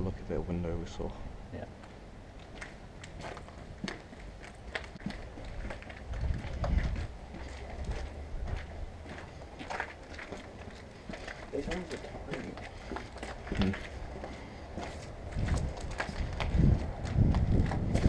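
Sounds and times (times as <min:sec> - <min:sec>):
footsteps on concrete: 0:01.8 - 0:18.0
low rumble: 0:05.0 - 0:09.4.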